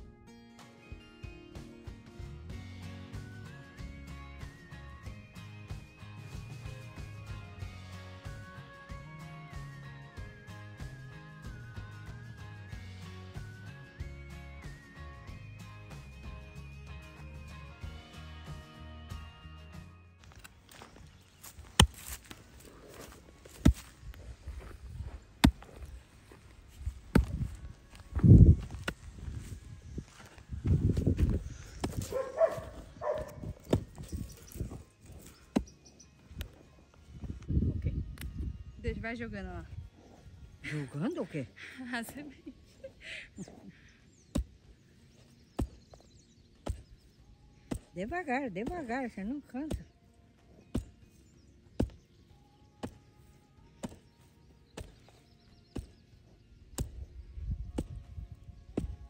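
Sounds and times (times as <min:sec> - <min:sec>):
background music: 0:00.0 - 0:59.0
hoes chopping dry soil: 0:20.2 - 0:36.7, 0:43.4 - 0:59.0.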